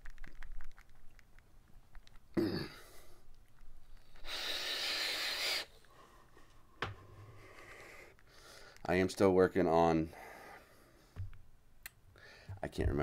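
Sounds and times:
person exhaling vapour: 0:04.2 - 0:05.7
short sharp breath: 0:04.2 - 0:06.3.

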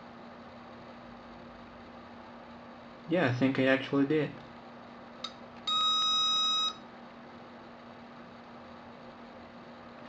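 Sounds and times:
multimeter continuity beep: 0:05.7 - 0:06.8.

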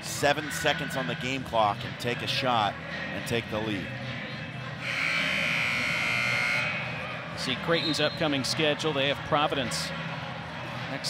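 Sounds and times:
arena buzzer horn: 0:04.8 - 0:07.0.

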